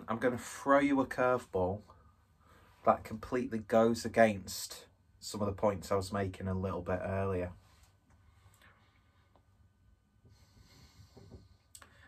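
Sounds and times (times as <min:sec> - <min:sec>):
faint breath through nose: 0:10.3 - 0:12.0.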